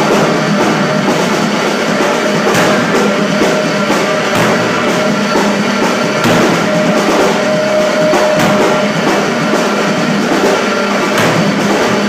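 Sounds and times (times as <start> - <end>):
crashing cymbals: 0.0 - 12.0
live rock band playing: 0.0 - 12.0
distorted guitar note: 2.1 - 12.0.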